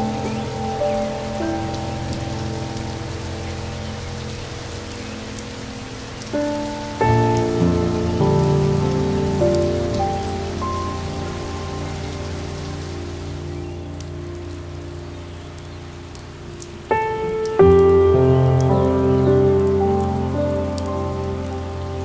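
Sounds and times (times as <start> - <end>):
soft instrumental music: 0.0 - 22.0
steady rain falling: 0.0 - 22.0.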